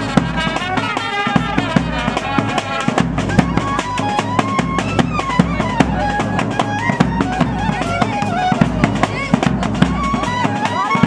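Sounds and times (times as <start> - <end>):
drums and cymbal hits: 0.0 - 11.0
wind instrument melody: 0.0 - 11.0.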